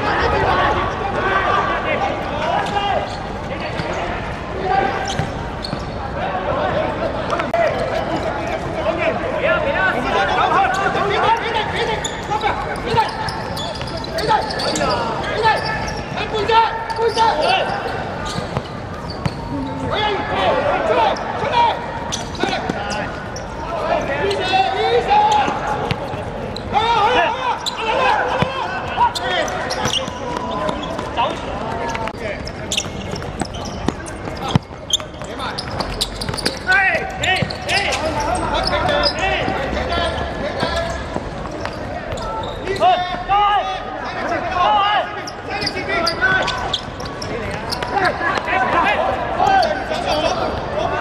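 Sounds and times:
players shouting: 0:06.1 - 0:32.2.

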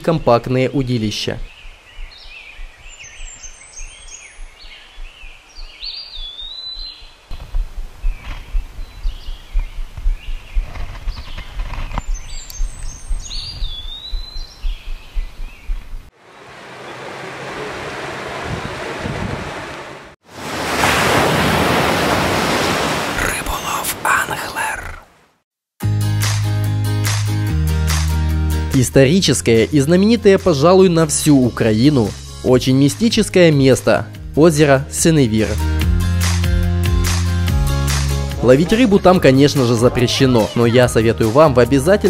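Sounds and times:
songbirds chirping and whistling: 0:01.2 - 0:07.4, 0:08.0 - 0:16.1
wind rumble on microphone: 0:06.7 - 0:16.1, 0:17.0 - 0:20.2
surf crashing: 0:16.1 - 0:23.8
water rushing: 0:16.1 - 0:25.3.

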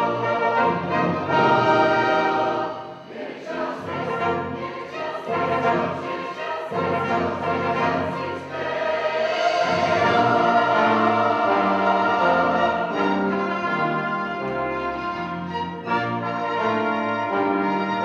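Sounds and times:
mixed choir singing: 0:00.0 - 0:15.2
orchestra of strings and horn: 0:00.0 - 0:18.0.

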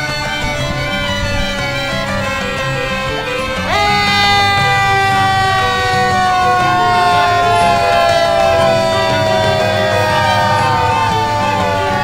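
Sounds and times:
fire engine siren: 0:00.0 - 0:12.0.

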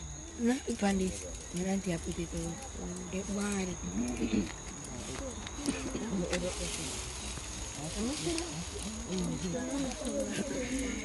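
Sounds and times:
people talking: 0:00.4 - 0:11.0.

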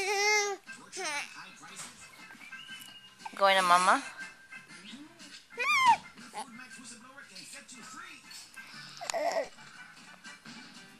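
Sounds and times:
baby squealing: 0:00.0 - 0:01.3, 0:05.6 - 0:06.0
background music: 0:00.0 - 0:10.9.

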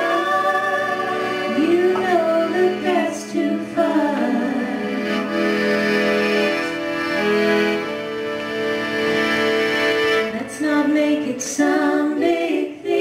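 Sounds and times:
women singing in harmony: 0:00.0 - 0:05.3, 0:10.3 - 0:13.0
accordion: 0:00.0 - 0:13.0
mandolin: 0:00.0 - 0:13.0.

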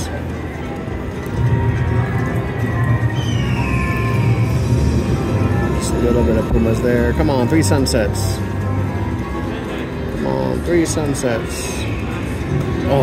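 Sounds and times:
slot machine music: 0:04.4 - 0:13.0.

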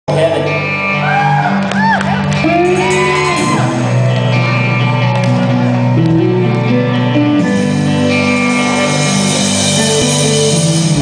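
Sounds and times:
rock band playing live: 0:00.1 - 0:11.0
people shouting and whooping: 0:01.0 - 0:06.0.

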